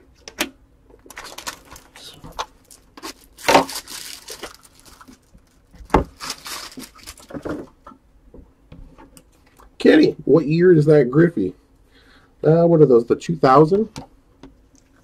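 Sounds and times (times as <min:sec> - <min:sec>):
foil wrappers crinkling: 0:01.0 - 0:07.7.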